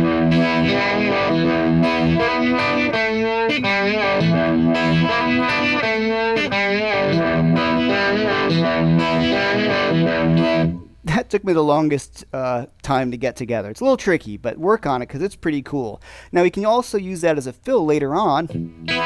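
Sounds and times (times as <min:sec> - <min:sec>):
distorted electric guitar bends: 0:00.0 - 0:11.1, 0:18.5 - 0:19.0.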